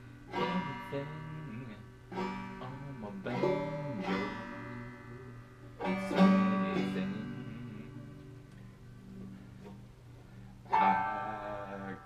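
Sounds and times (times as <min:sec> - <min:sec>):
banjo strummed: 0:00.0 - 0:12.0.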